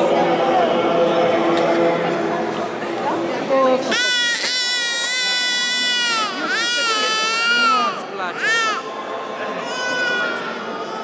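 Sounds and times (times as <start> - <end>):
infant crying loudly: 3.9 - 8.8.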